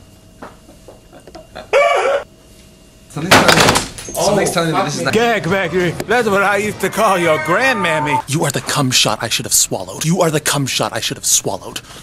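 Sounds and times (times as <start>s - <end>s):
man yelping: 6.4s - 8.3s.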